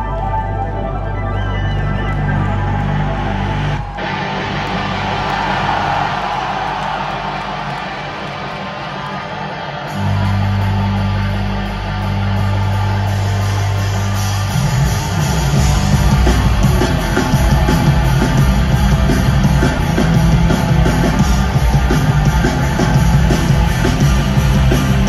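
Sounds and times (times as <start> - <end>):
live punk band playing: 8.0 - 25.0.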